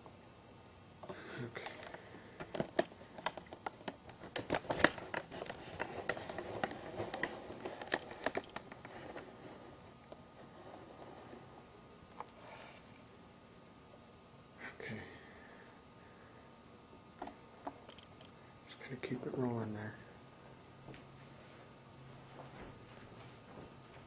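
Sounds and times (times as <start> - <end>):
small clicks taps and rustles: 1.6 - 10.2.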